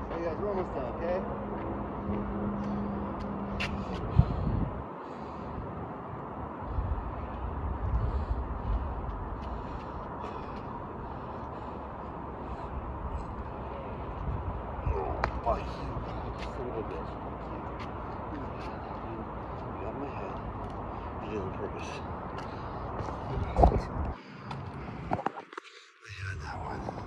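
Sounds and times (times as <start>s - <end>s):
outdoor background noise: 0.0s - 27.0s.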